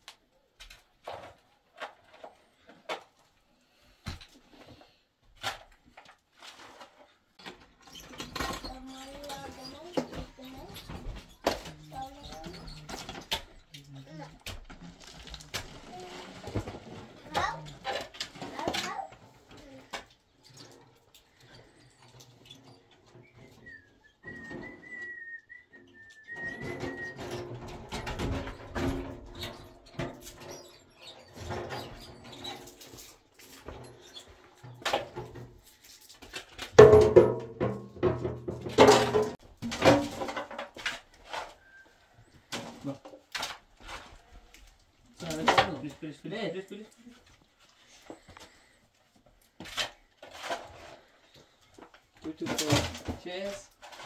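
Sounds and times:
shovels scraping soil and rubble: 0:49.6 - 0:51.6.

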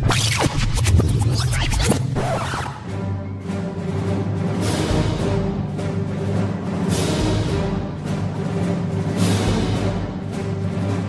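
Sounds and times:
turntable scratching: 0:00.0 - 0:02.9.

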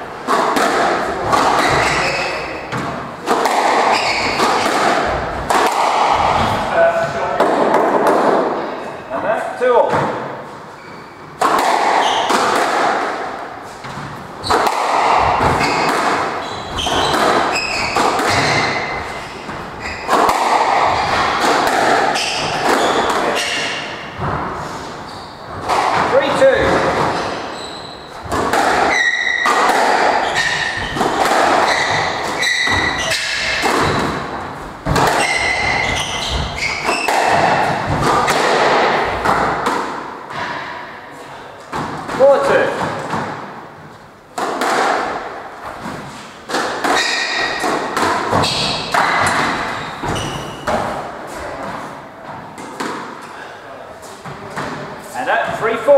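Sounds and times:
squash ball struck by rackets: 0:00.2 - 0:08.6, 0:11.4 - 0:24.6, 0:25.5 - 0:27.6, 0:28.2 - 0:40.9, 0:44.4 - 0:51.8, 0:52.5 - 0:53.2
shoes squeaking on wooden floor: 0:01.2 - 0:07.2, 0:10.4 - 0:11.4, 0:12.0 - 0:12.4, 0:13.6 - 0:38.1, 0:45.6 - 0:52.6.

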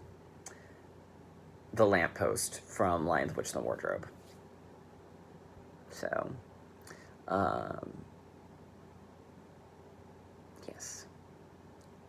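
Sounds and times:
electric fan running: 0:00.0 - 0:12.0
person breathing: 0:00.5 - 0:01.0, 0:06.8 - 0:07.2.

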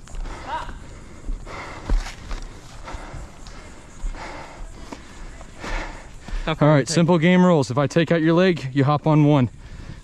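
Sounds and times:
footsteps on sandy dirt: 0:00.0 - 0:06.7.

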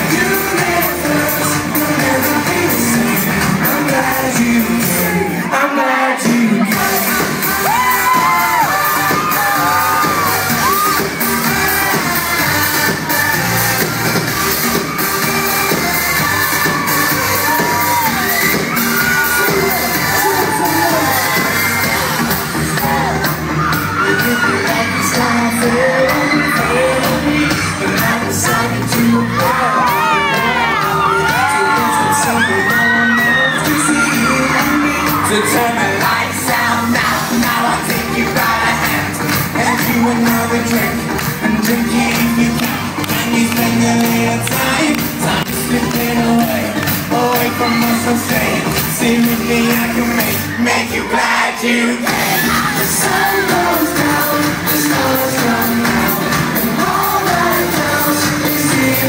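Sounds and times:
crowd singing along: 0:00.0 - 0:59.0
fans screaming: 0:00.0 - 0:59.0
live dance-pop song over speakers: 0:00.0 - 0:59.0.

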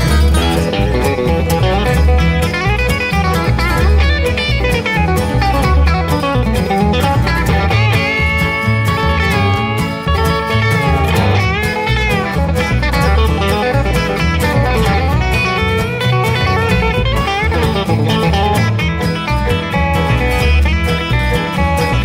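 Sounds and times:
blues band instrumental: 0:00.0 - 0:22.0
sliding lead guitar line: 0:00.0 - 0:22.0.

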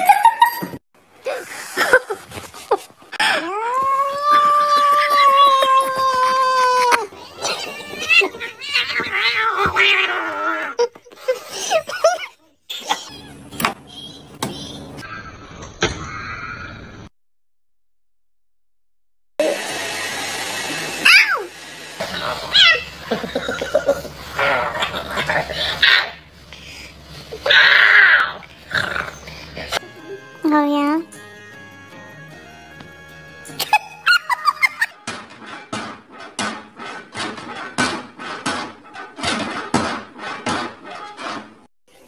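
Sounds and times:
cat yowling: 0:03.5 - 0:10.8, 0:21.0 - 0:21.5, 0:22.2 - 0:23.0, 0:27.4 - 0:28.5
cat growling yowl: 0:07.0 - 0:10.8, 0:24.4 - 0:26.2, 0:27.4 - 0:29.2.

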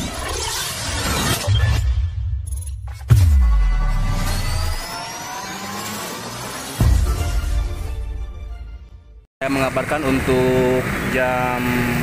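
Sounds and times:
cinematic intro music: 0:00.3 - 0:09.3.

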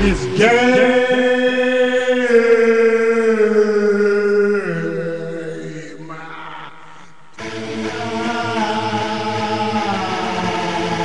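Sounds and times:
song with long held vocal notes: 0:00.0 - 0:11.0.

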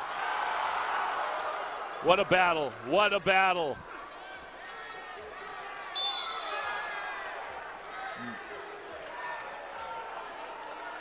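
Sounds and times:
arena crowd noise: 0:00.0 - 0:11.0
referee's whistle: 0:06.0 - 0:06.7.

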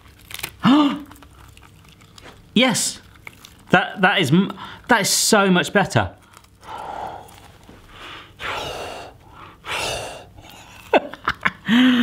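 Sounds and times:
man blowing breath into bubble: 0:08.0 - 0:10.8.

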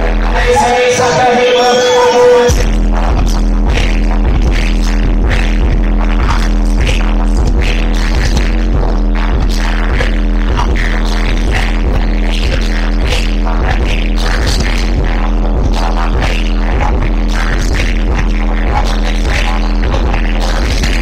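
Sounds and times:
hip-hop beat over club speakers: 0:00.0 - 0:21.0
people rapping: 0:00.0 - 0:21.0.

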